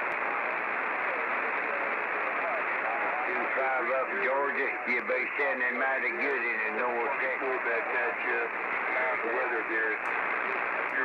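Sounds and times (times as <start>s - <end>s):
radio static: 0.0s - 11.0s
faint radio voice: 0.2s - 11.0s.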